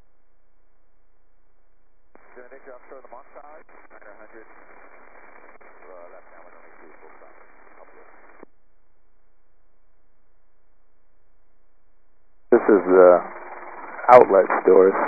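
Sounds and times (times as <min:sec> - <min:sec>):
radio voice transmission: 0:02.2 - 0:08.4, 0:12.5 - 0:15.0.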